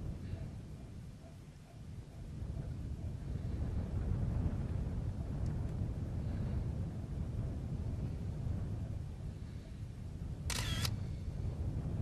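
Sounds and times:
camera shutter burst: 0:10.5 - 0:11.0.

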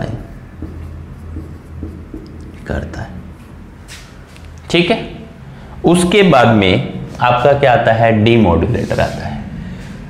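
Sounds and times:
marker scratching on whiteboard: 0:00.0 - 0:04.1.

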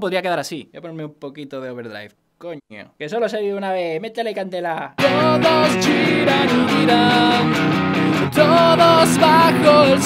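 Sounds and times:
electric guitar strumming: 0:05.0 - 0:10.0
man singing: 0:05.0 - 0:10.0.

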